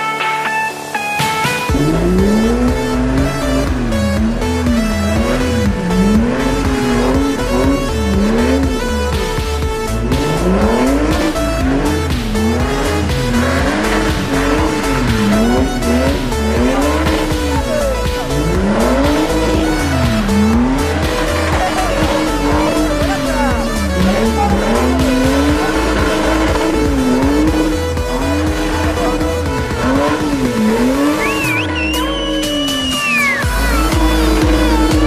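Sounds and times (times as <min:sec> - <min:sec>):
music with steady beat: 0:00.0 - 0:35.0
buggy engine revving: 0:01.2 - 0:35.0
tyres squealing and skidding: 0:01.5 - 0:35.0.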